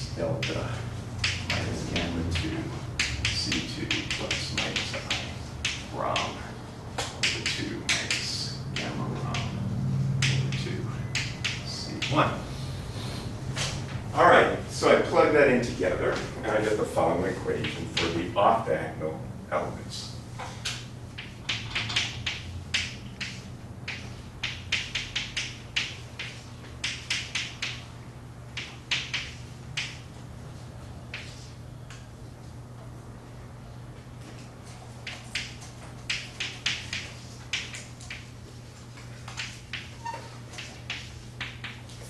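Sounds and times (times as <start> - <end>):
low room hum: 0.0 - 42.0
chalk tapping on blackboard: 1.2 - 6.4, 7.0 - 9.6, 11.2 - 12.2, 21.2 - 27.8, 28.5 - 30.0, 35.0 - 42.0.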